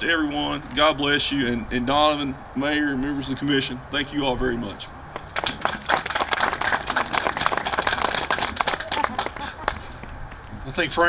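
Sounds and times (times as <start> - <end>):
audience applauding: 5.2 - 10.1.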